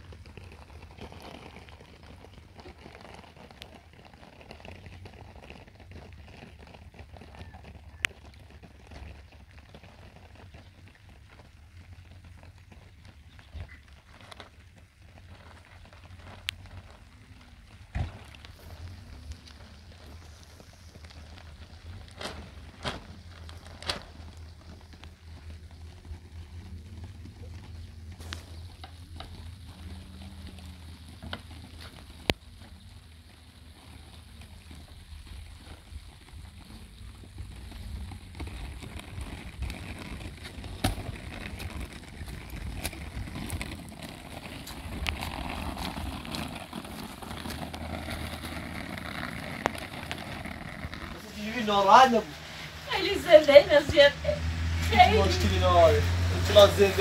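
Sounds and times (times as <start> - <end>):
plastic sheeting rustling: 12.8 - 57.0.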